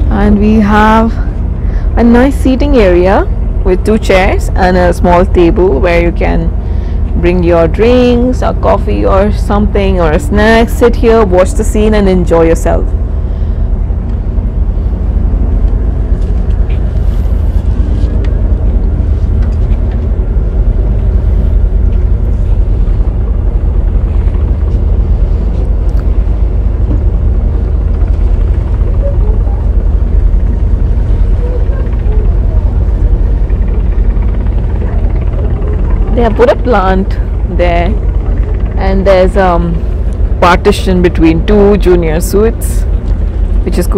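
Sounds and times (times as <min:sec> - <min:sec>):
low ship engine hum: 0:00.0 - 0:43.9
wind buffeting microphone: 0:00.0 - 0:43.9.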